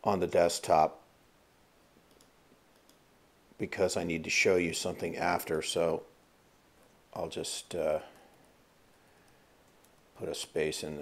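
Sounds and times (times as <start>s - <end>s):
computer mouse clicks: 2.1s - 3.0s, 9.2s - 10.1s.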